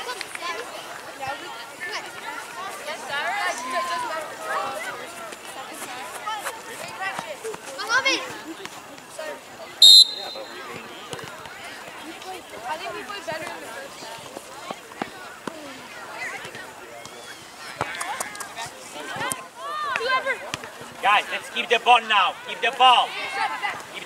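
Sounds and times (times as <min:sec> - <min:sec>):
players and spectators voices: 0:00.0 - 0:24.0
referee's whistle blast: 0:09.8 - 0:10.7.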